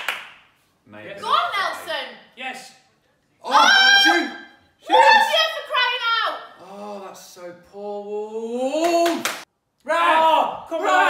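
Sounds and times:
loud cheer: 3.4s - 5.7s, 9.9s - 11.0s
people exclaiming in excitement: 3.4s - 5.8s.

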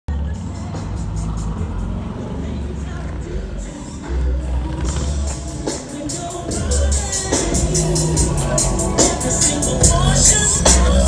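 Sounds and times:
bass-heavy music over speakers: 0.1s - 11.0s.

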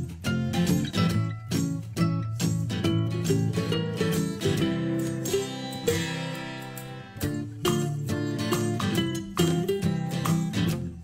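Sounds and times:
plucked guitar music: 0.0s - 11.0s.

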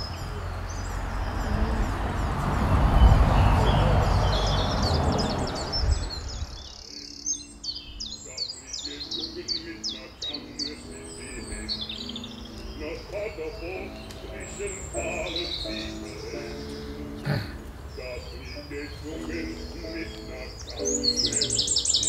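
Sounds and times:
birds chirping: 0.0s - 22.0s
loud rushing noise: 0.9s - 6.6s.

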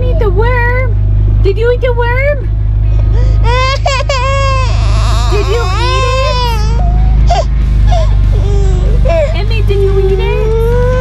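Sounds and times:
low rumble: 0.0s - 11.0s
toddler crying: 3.2s - 9.4s, 10.2s - 11.0s.

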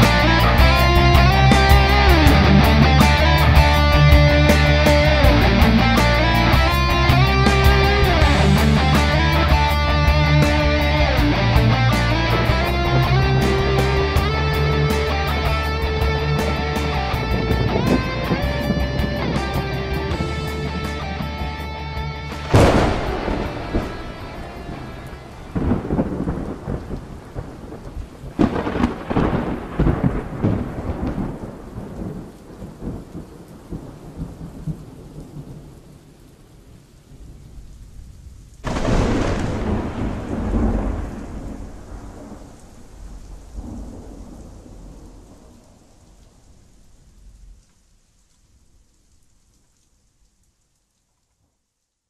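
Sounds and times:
thunderclaps rumbling: 0.0s - 47.6s
rain hissing: 0.0s - 52.0s.

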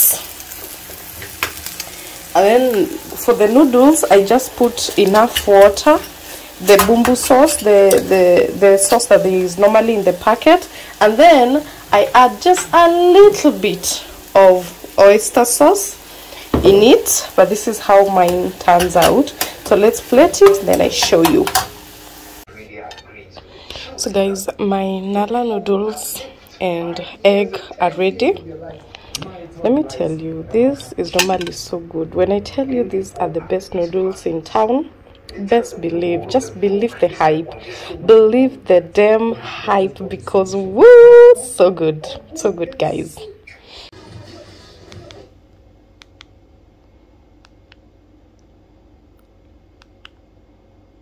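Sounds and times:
eggs sizzling in a pan: 0.0s - 22.5s.

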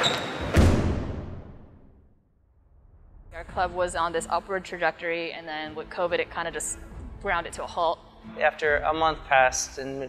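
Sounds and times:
sneaker squeak: 0.0s - 0.6s.

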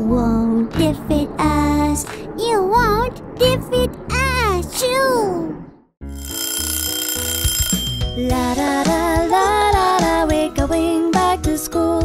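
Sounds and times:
child singing over backing music: 8.4s - 12.0s.

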